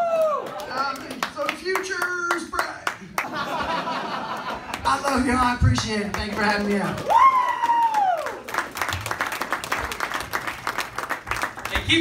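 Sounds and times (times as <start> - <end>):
scattered clapping: 4.8 - 12.0.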